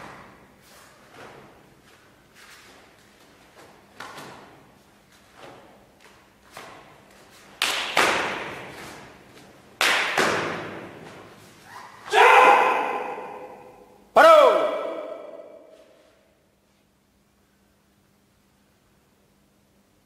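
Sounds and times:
sharp cracks of martial arts strikes: 0:06.5 - 0:11.3
loud martial arts shouts: 0:11.7 - 0:15.8.

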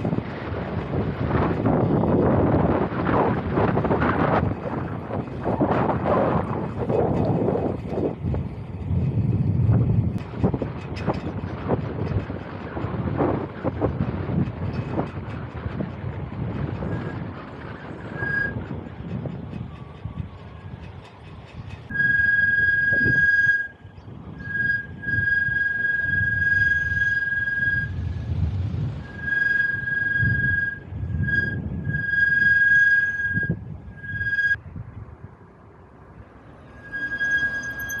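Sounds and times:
wind rumble on microphone: 0:00.0 - 0:38.0
bicycle brakes squealing: 0:16.7 - 0:28.1, 0:29.0 - 0:34.6, 0:36.5 - 0:38.0.

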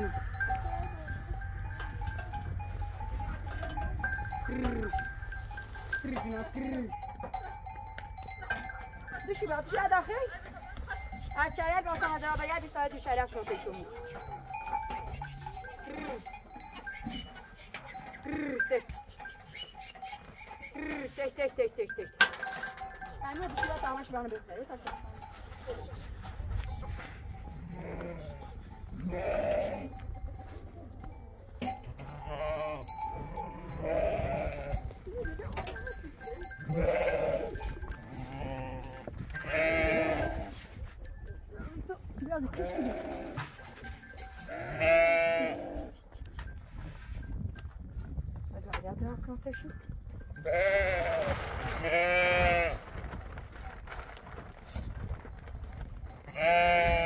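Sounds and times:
young goats bleating: 0:27.6 - 0:30.0, 0:32.0 - 0:35.0, 0:36.4 - 0:40.5, 0:42.5 - 0:43.5, 0:44.4 - 0:46.0, 0:50.4 - 0:52.8, 0:56.3 - 0:57.0
lambs bleating: 0:29.0 - 0:29.9, 0:33.5 - 0:34.7, 0:36.7 - 0:40.5, 0:44.5 - 0:45.8, 0:50.5 - 0:51.2, 0:56.4 - 0:57.0.

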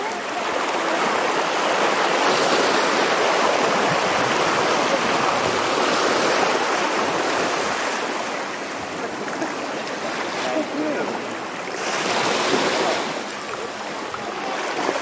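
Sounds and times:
small surf lapping at shore: 0:00.0 - 0:15.0.

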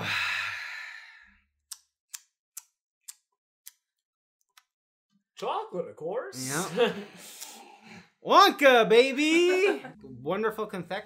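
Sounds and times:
person sighing: 0:00.0 - 0:01.2
small sharp clicks: 0:01.6 - 0:04.8.

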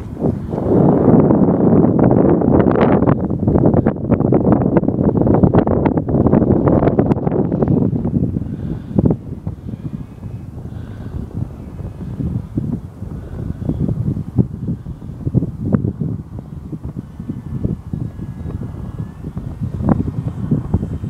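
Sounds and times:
faint distant whine: 0:00.0 - 0:21.0
wind buffeting microphone: 0:00.0 - 0:21.0.

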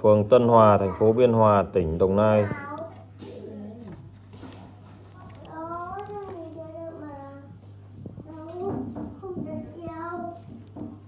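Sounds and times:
steady low hum: 0:00.0 - 0:11.0
child singing: 0:05.2 - 0:07.6, 0:08.2 - 0:10.5.

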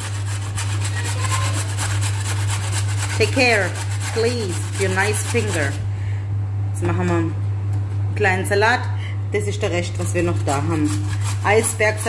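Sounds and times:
carrot grated on metal grater: 0:00.0 - 0:05.8, 0:10.0 - 0:12.0
steady low hum: 0:00.0 - 0:12.0.

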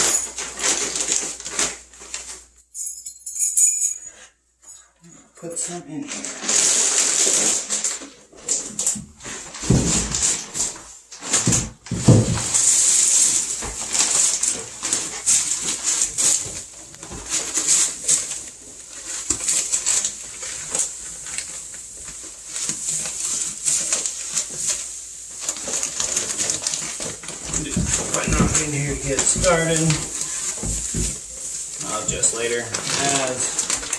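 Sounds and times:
wood shavings rustling: 0:00.0 - 0:02.6, 0:05.9 - 0:33.9.

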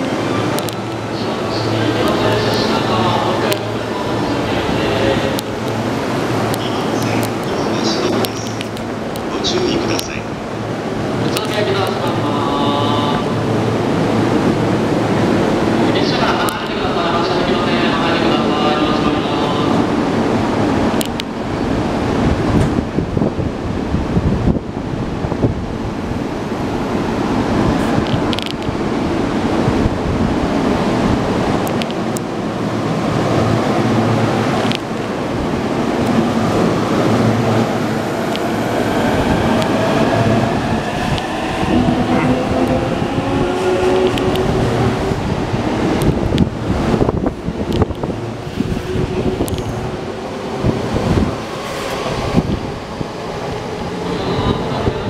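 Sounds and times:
train doors closing: 0:34.2 - 0:55.0.

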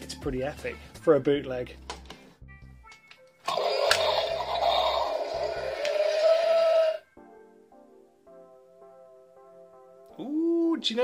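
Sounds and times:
toy dinosaur roar from small speaker: 0:03.5 - 0:07.0.

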